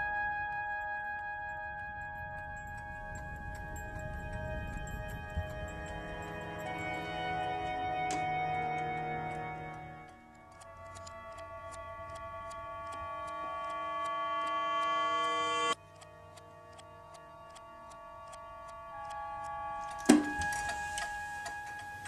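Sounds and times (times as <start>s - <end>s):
sustained musical tones: 0.6s - 22.0s
clock ticking: 2.4s - 22.0s.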